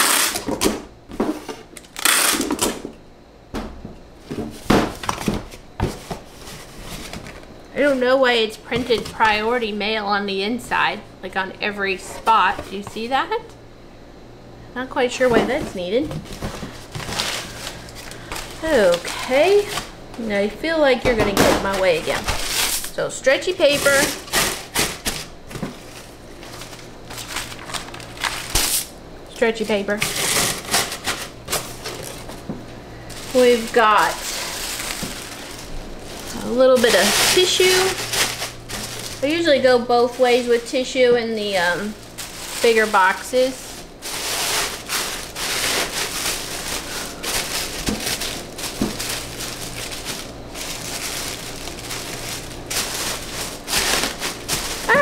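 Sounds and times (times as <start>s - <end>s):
paper rustling and crinkling: 4.3s - 8.1s, 15.3s - 19.9s, 21.6s - 23.0s, 23.6s - 28.9s, 29.8s - 40.8s, 41.4s - 55.0s.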